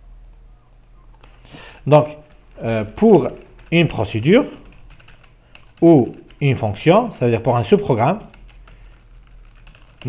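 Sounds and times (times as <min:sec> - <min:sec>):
keyboard typing: 0:00.2 - 0:01.5, 0:02.1 - 0:07.5, 0:08.2 - 0:10.0.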